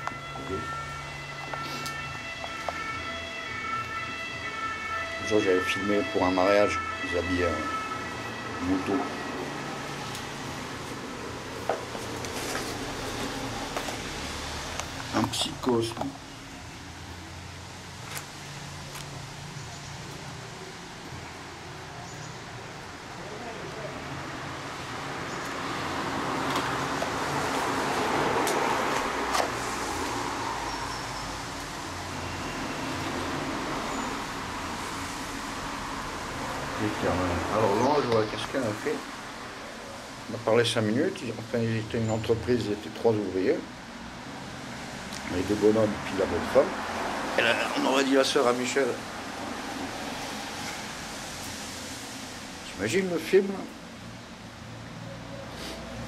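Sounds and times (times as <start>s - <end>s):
vehicle passing: 0.0s - 56.0s.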